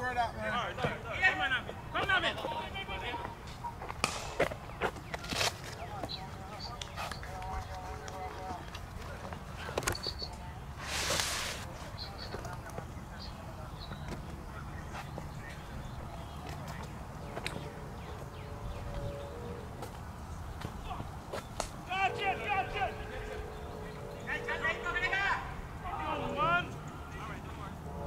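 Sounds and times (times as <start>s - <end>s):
faint distant voices: 0.0s - 28.0s
burst of hiss: 10.8s - 11.7s.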